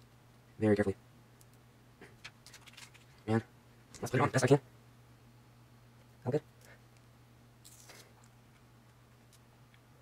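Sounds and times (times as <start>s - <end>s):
plastic film clicks and rustles: 2.2s - 3.2s.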